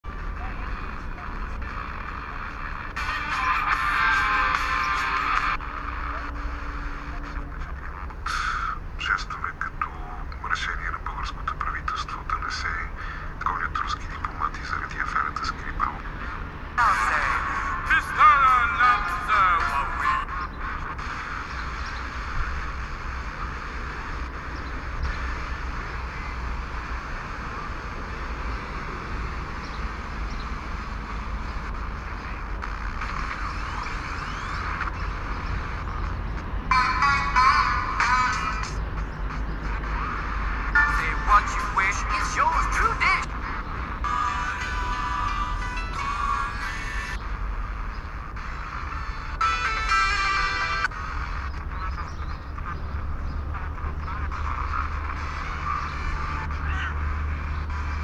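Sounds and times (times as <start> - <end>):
radio static hiss: 0.1 - 36.8, 37.4 - 58.0.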